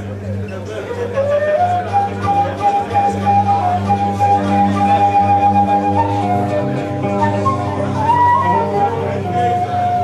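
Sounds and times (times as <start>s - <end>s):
flute playing pulsing high note: 0.8s - 10.0s.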